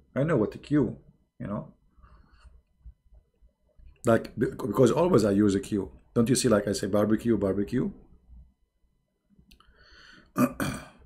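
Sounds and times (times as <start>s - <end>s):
man speaking: 0.0s - 1.8s, 4.0s - 8.1s
man clearing throat: 10.4s - 11.0s.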